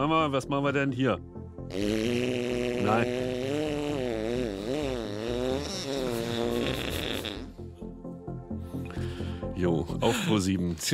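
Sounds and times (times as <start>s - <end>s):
buzzy fart noise: 1.7s - 7.6s.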